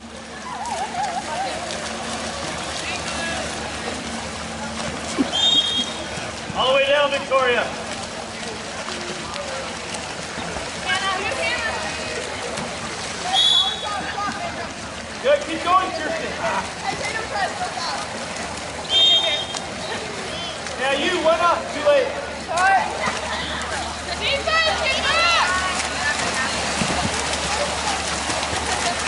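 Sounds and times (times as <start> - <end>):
water splashing: 0.0 - 29.0
people shouting and calling: 22.5 - 26.6.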